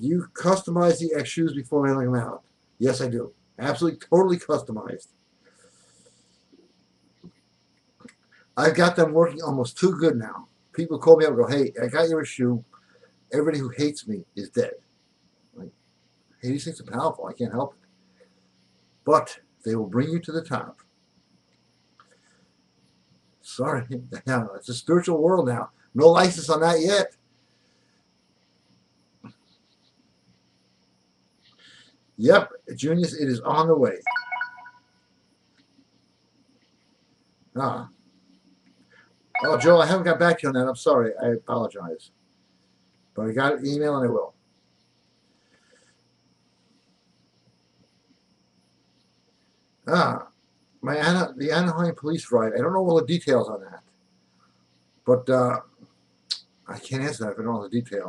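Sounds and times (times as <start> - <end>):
faint hiss: 0.0 - 34.1, 34.7 - 58.0
faint room hum: 0.0 - 58.0
electronic chime: 34.0 - 35.0, 39.4 - 40.2.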